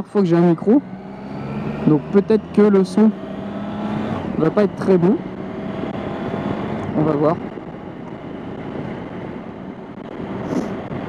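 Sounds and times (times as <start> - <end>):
motorcycle engine running: 0.0 - 11.0
road noise: 0.0 - 11.0
wind noise: 5.3 - 11.0.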